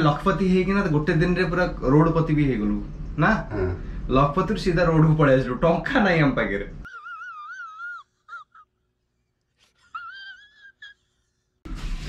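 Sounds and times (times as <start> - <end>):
man sobbing: 6.9 - 8.9, 9.8 - 11.1.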